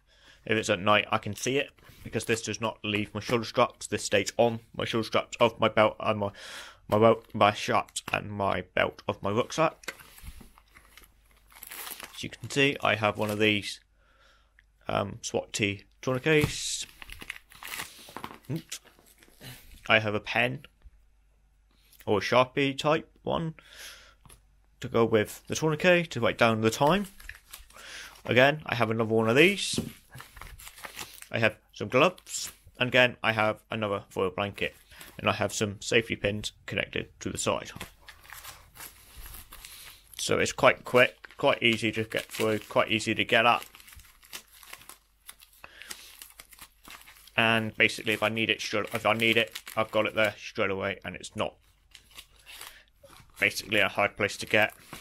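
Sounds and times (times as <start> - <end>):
plastic packet crinkling: 9.8 - 12.4, 16.8 - 19.4, 27.0 - 28.3, 38.0 - 50.4, 51.7 - 53.8.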